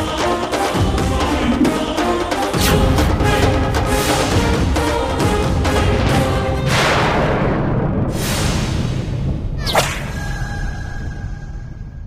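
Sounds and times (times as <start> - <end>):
low rumbling dramatic music: 0.0 - 12.0
whip-like swish: 9.6 - 10.2.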